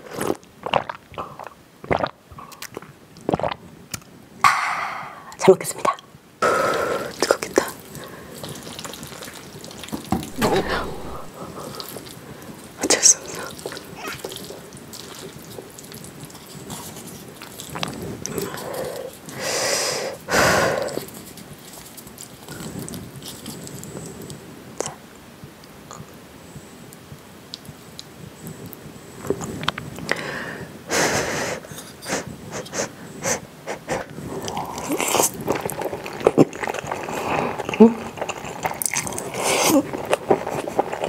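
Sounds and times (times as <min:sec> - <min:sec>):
noodles slurped and chewed: 0:00.0 - 0:04.1, 0:06.6 - 0:24.4, 0:33.8 - 0:41.0
breathy blowing on food: 0:06.4 - 0:07.2, 0:18.3 - 0:21.1
noisy breaths through nose: 0:06.4 - 0:07.2, 0:18.4 - 0:21.2, 0:30.1 - 0:34.7.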